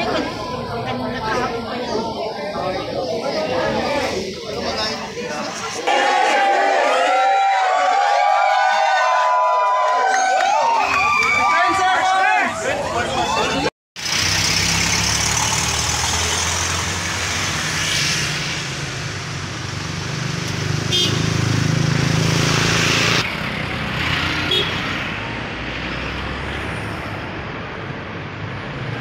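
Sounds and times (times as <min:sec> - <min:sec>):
passing cars and motorcycles: 0:14.0 - 0:29.0.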